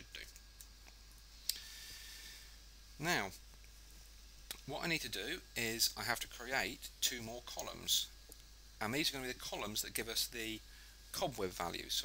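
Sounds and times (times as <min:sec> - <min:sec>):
faint steady hiss: 0:00.0 - 0:12.0
person speaking: 0:04.5 - 0:08.2, 0:08.8 - 0:12.0.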